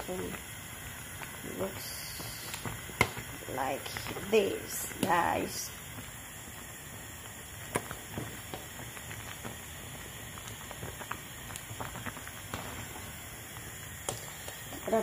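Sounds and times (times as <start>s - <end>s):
steady hiss: 0.0s - 15.0s.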